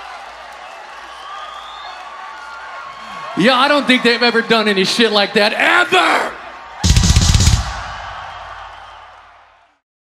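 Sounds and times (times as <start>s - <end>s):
rapid drum hits: 6.8s - 8.7s
heavy bass: 6.9s - 8.4s.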